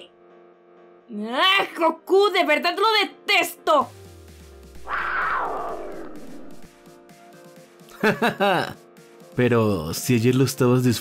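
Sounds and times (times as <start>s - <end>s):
background music with drone: 3.9s - 9.4s
rushing sound effect: 4.8s - 6.8s.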